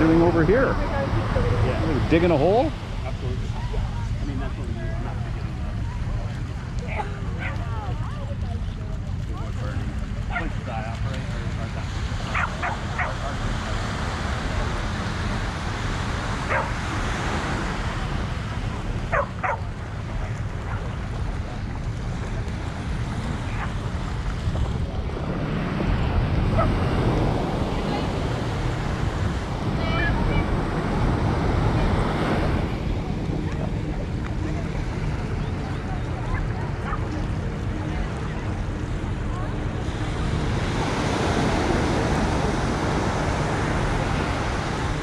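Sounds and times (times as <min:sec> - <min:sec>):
faint voices: 0:00.0 - 0:45.0
surf washing onto sand: 0:00.0 - 0:45.0
wind buffeting microphone: 0:00.0 - 0:45.0
distant dog barks: 0:12.3 - 0:13.4, 0:16.4 - 0:16.9, 0:19.1 - 0:19.7, 0:26.5 - 0:26.8, 0:36.3 - 0:37.2.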